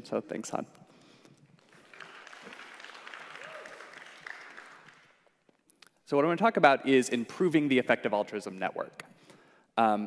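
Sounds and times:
audience applauding: 1.6s - 5.4s.

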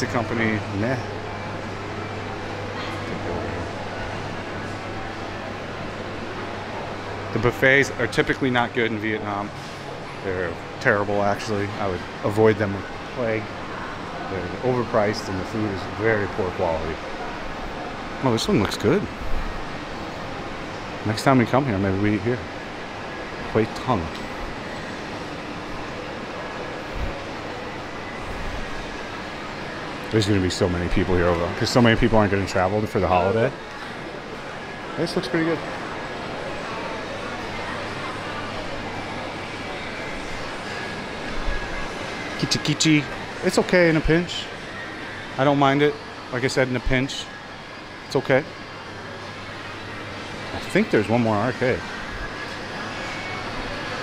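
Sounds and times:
shopping mall background noise: 0.0s - 54.0s.

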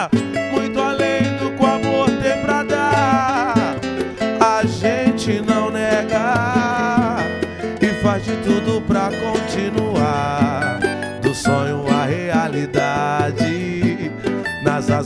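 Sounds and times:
cavaquinho picking melody: 0.0s - 15.0s
strummed acoustic guitar: 0.0s - 15.0s.

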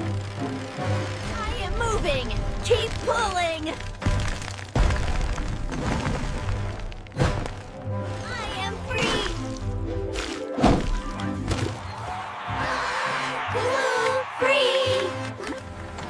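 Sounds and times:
background music: 0.0s - 16.0s
concrete slab cracking: 3.8s - 7.7s.

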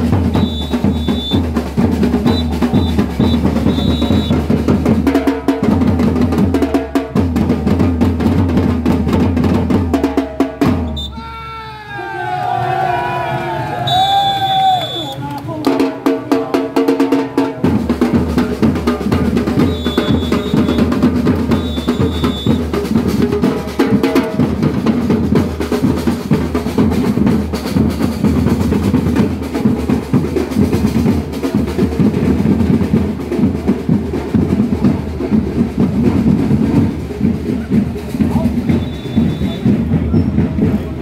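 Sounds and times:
samba drums playing: 0.0s - 11.2s, 13.9s - 41.0s.

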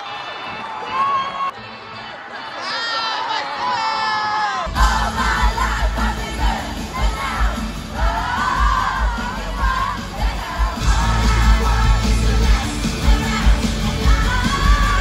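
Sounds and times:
crowd shouting and singing: 0.0s - 15.0s
kick drum and bass beats: 4.7s - 15.0s.

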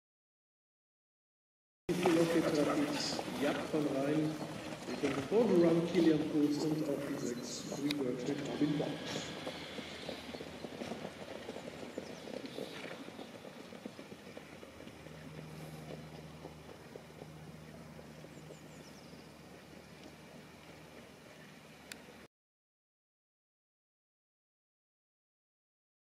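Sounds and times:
hoofbeats on sand track: 1.9s - 22.2s
low steady hum: 1.9s - 22.3s.

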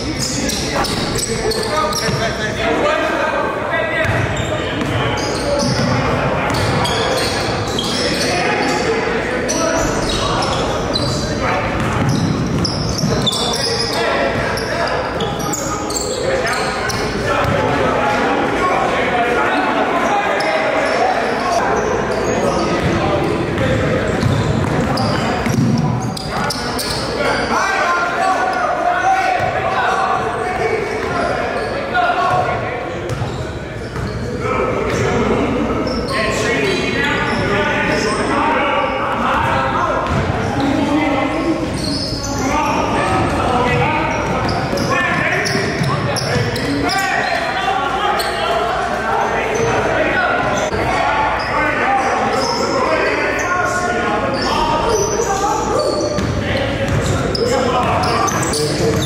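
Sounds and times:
indistinct voices: 0.0s - 59.0s.

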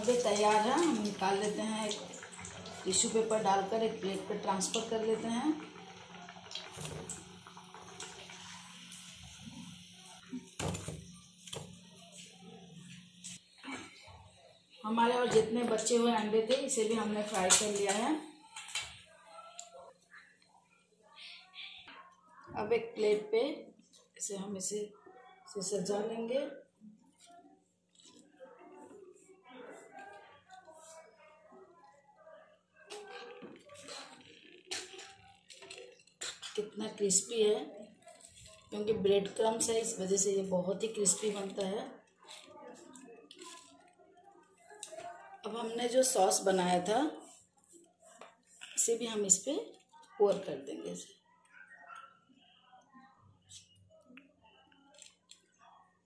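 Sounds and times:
hot oil sizzling: 0.0s - 19.1s
faint voices talking: 23.6s - 56.0s.

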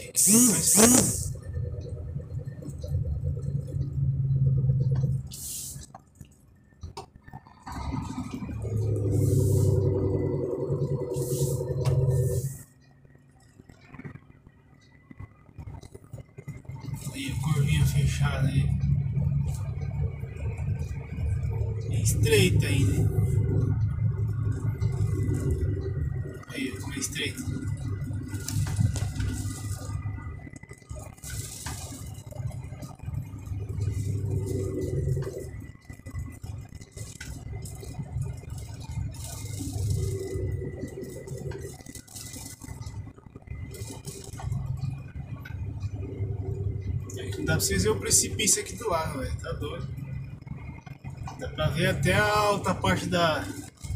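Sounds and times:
faint high whine: 0.0s - 5.9s
diesel truck engine running: 0.0s - 53.9s.

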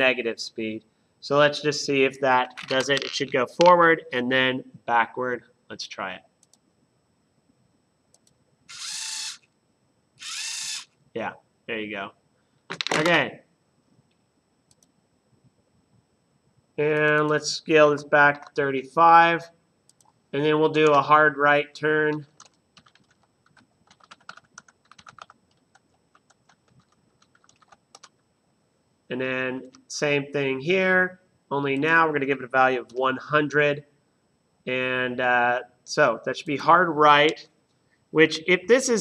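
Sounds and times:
faint clicks: 6.4s - 6.6s, 14.0s - 14.9s, 19.9s - 20.2s
motor gear whine: 8.7s - 9.4s, 10.2s - 10.9s
computer keyboard typing: 22.1s - 28.1s.

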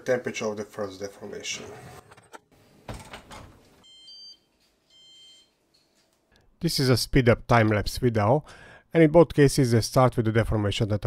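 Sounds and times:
short electronic beeps: 3.8s - 5.5s.

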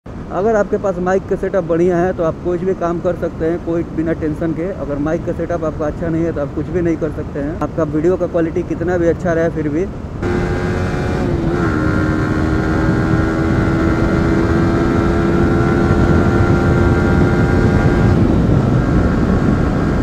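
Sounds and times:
wind and road noise: 0.1s - 20.0s
motorcycle engine cruising: 10.2s - 20.0s.

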